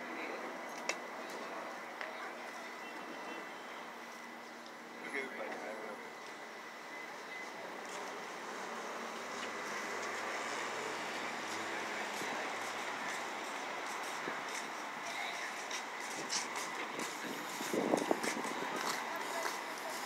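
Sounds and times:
passing vehicles: 0.0s - 20.0s.

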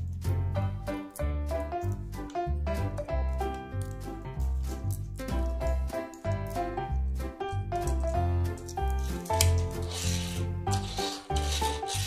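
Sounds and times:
background music with bass: 0.0s - 12.0s
toy car wheels rubbing tabletop: 9.5s - 12.0s.

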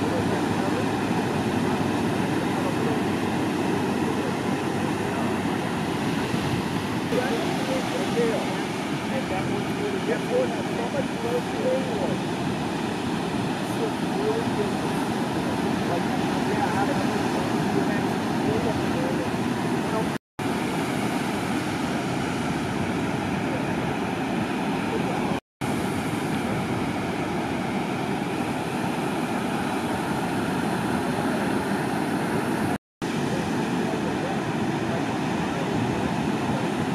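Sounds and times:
ocean surf rushing: 0.0s - 36.9s.

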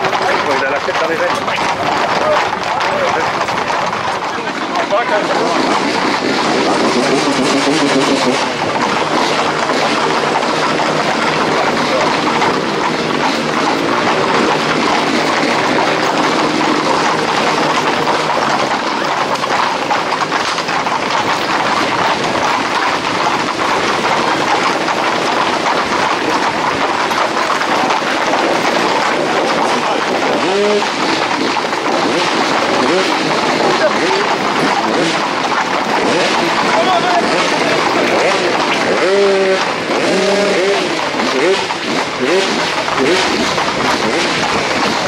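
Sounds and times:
horse hooves clattering on asphalt: 0.0s - 45.0s.

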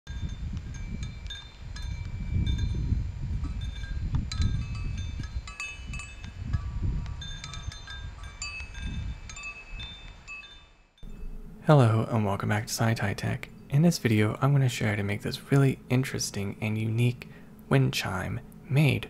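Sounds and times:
metal wind chime clinking: 0.1s - 11.4s
low gusty wind rumble: 0.1s - 15.3s.

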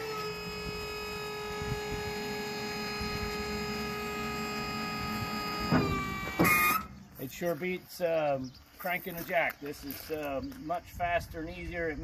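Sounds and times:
hydraulic pump motor whine: 0.0s - 7.1s.

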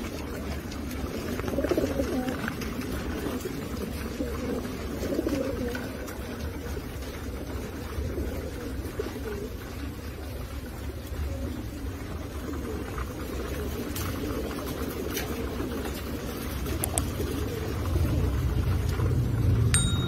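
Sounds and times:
pigeons cooing: 0.0s - 20.0s
low steady rumble: 15.9s - 20.0s.

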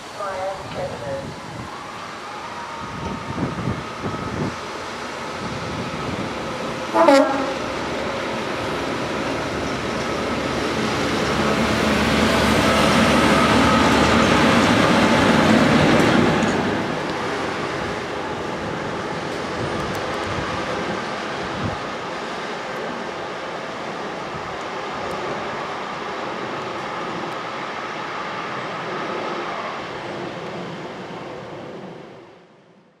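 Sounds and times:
locomotives passing on rails: 0.0s - 32.9s.

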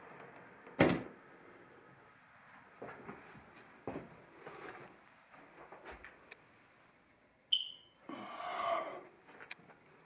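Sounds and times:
smoke detector chirp: 7.5s - 8.0s.

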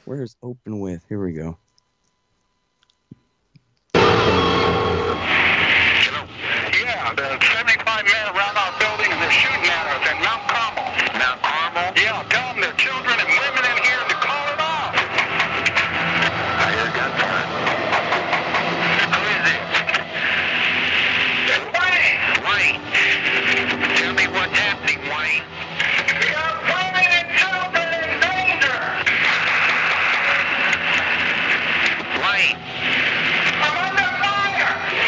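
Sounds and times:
heavy noisy hiss: 4.0s - 35.0s
indistinct voices on phone line: 6.0s - 35.0s.

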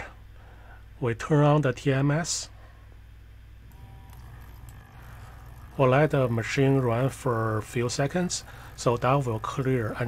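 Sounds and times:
small pump humming: 3.5s - 10.0s.

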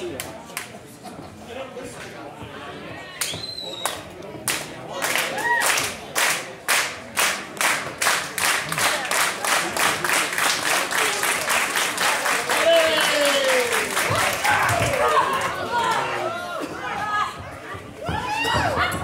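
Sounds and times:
audience clapping in unison: 3.8s - 16.0s.

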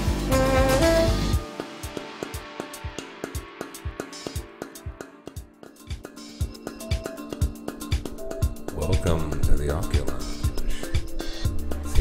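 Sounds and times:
electronic drum beat: 0.0s - 12.0s.

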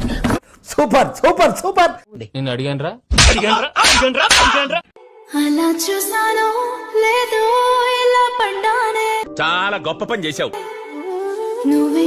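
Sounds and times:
slaps to the face: 3.1s - 4.6s
man's voice: 9.3s - 10.6s.

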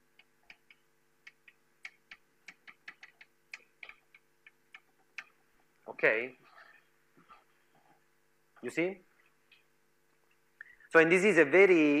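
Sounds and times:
chalk tapping on blackboard: 0.2s - 5.3s.

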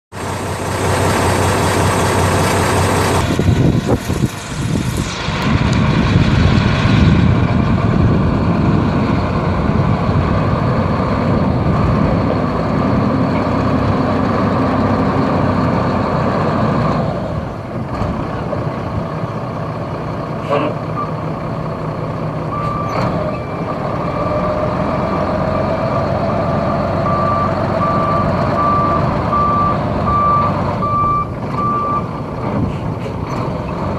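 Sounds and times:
diesel truck engine running: 0.1s - 33.9s.

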